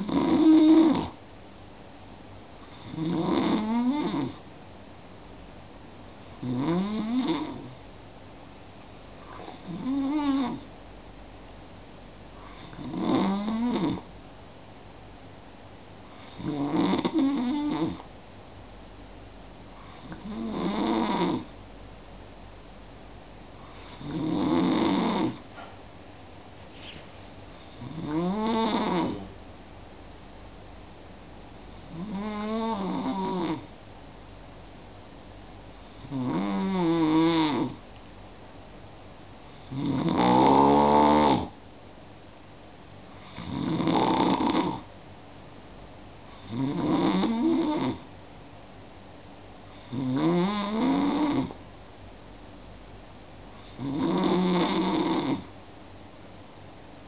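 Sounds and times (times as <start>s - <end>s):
person snoring: 0.0s - 1.2s, 2.6s - 4.4s, 6.2s - 7.9s, 9.2s - 10.7s, 12.4s - 14.1s, 16.1s - 18.0s, 19.8s - 21.5s, 23.6s - 25.4s, 27.6s - 29.3s, 31.7s - 33.7s, 35.8s - 37.8s, 39.5s - 41.6s, 43.2s - 44.9s, 46.3s - 48.0s, 49.8s - 51.6s, 53.6s - 55.5s.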